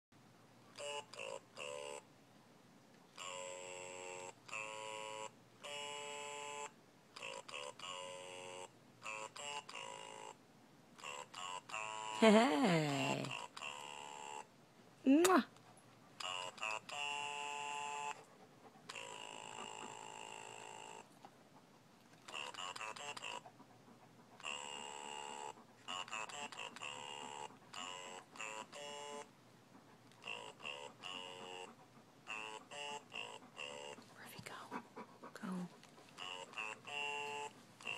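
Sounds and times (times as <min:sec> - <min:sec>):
electronic toy beeping tune: 0:03.2 - 0:10.4, 0:16.2 - 0:18.2, 0:24.5 - 0:29.3.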